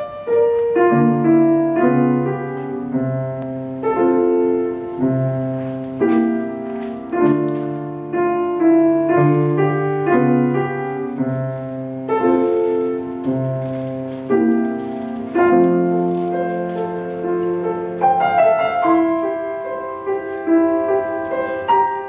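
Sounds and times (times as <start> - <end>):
classical piano music: 0.0 - 22.0.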